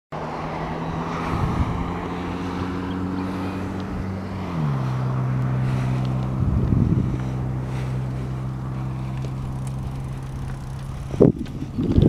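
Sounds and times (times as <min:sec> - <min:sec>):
wind and road noise from bicycle: 0:00.2 - 0:12.0
steady low hum: 0:03.2 - 0:11.8.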